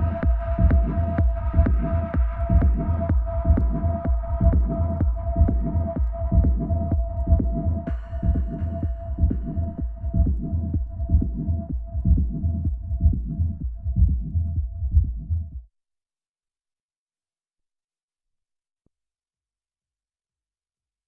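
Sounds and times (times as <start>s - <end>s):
hiss-like hi-hat: 0.0s - 13.5s
techno music: 0.0s - 15.3s
kick drum beat: 0.0s - 15.7s.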